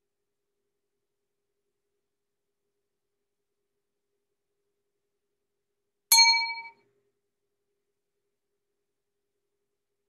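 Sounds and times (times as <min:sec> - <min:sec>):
bright metallic ding: 0:06.1 - 0:06.8.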